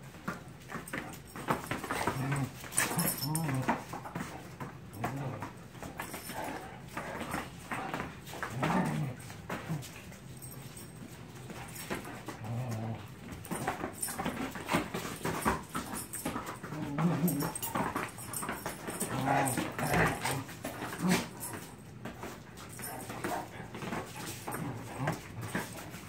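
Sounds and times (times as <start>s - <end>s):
paws scuffling on floor: 0.0s - 26.0s
dogs growling: 0.9s - 10.8s, 11.4s - 21.8s, 22.7s - 26.0s.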